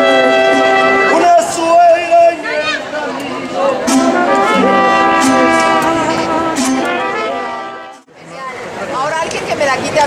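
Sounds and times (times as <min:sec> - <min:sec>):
mariachi band with trumpets and guitars: 0:00.0 - 0:08.1
people talking: 0:01.1 - 0:10.0.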